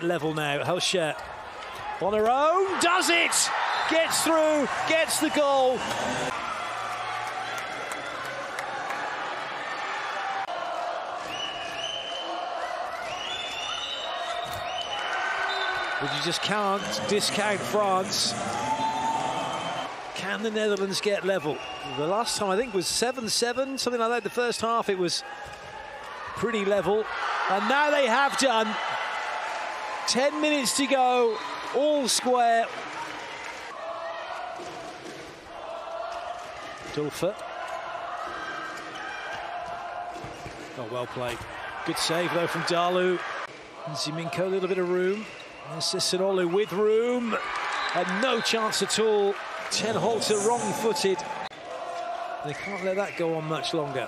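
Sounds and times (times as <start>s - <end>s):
indoor arena crowd noise: 0.0s - 54.0s
crowd chanting: 15.5s - 19.9s, 33.7s - 40.4s, 49.6s - 52.5s.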